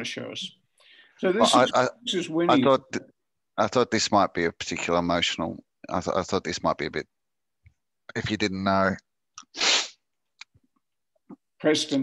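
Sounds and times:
person's sharp burst of breath: 0:09.5 - 0:10.0.

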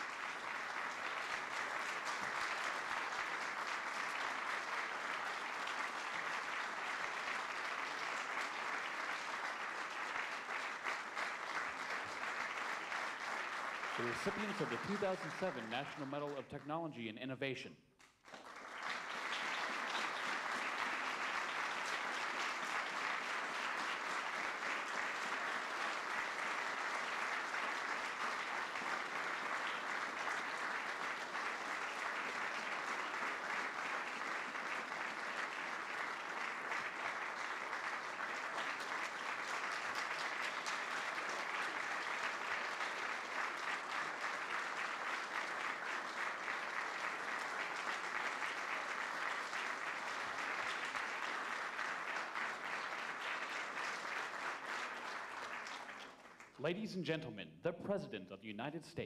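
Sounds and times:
audience applauding: 0:00.0 - 0:16.6, 0:18.2 - 0:56.8.

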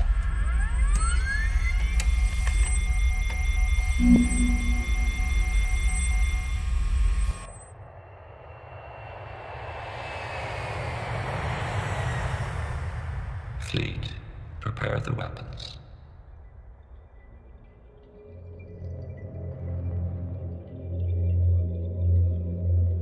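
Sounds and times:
electronic tones and beeps: 0:00.3 - 0:07.7
deep rumble: 0:03.9 - 0:05.4
tone gliding down: 0:03.9 - 0:05.8.

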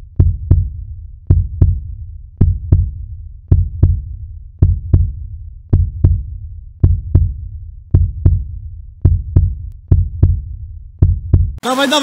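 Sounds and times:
heartbeat thumps: 0:00.0 - 0:11.6
low hum: 0:00.0 - 0:11.6.

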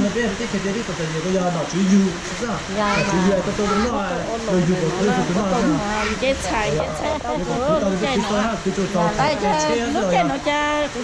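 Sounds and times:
people talking: 0:00.0 - 0:11.0
steady rushing noise: 0:00.0 - 0:11.0.

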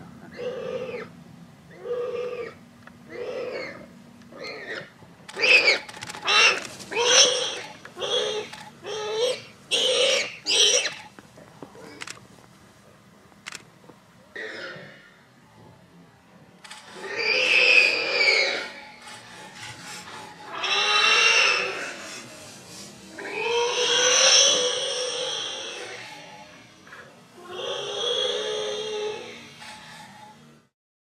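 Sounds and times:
warthog squealing: 0:00.3 - 0:01.1, 0:01.7 - 0:11.1, 0:14.4 - 0:15.1, 0:16.9 - 0:22.2, 0:23.2 - 0:30.4.

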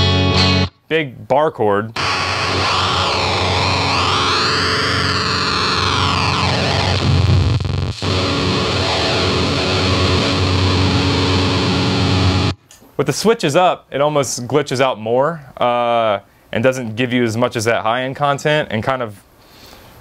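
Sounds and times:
fuzz electric guitar chord: 0:00.0 - 0:00.7, 0:02.0 - 0:12.6.

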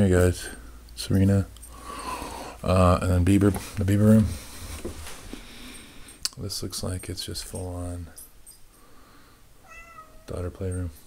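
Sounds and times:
cat meowing: 0:09.6 - 0:10.4.

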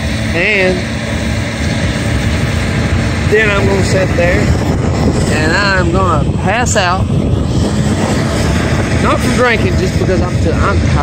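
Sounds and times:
large engine droning: 0:00.0 - 0:11.0.

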